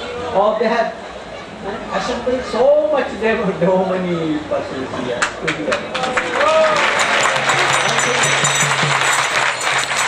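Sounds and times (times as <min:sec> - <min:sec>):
audience applauding: 0:05.2 - 0:10.0.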